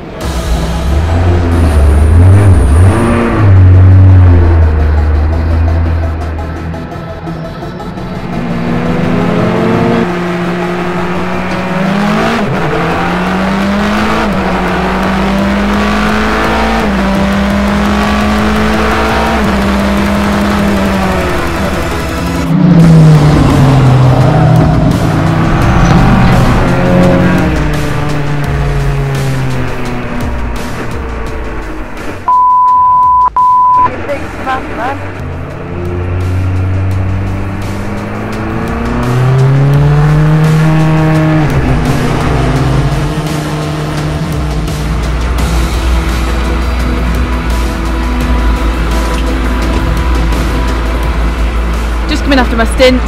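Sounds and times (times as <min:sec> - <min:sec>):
race car engine at speed: 0:00.0 - 0:53.0
high single-tone beep: 0:32.3 - 0:33.9.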